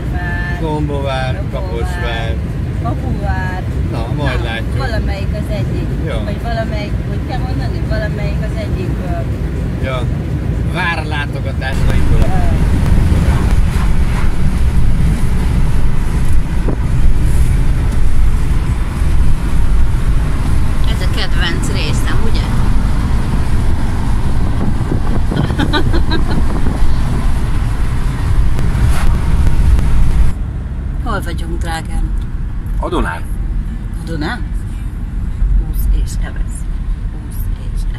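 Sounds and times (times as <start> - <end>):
road and wind noise inside car: 0.0 - 37.9.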